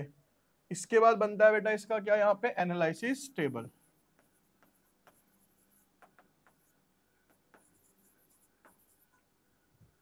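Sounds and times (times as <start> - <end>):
stylus tapping on screen: 4.1 - 9.2.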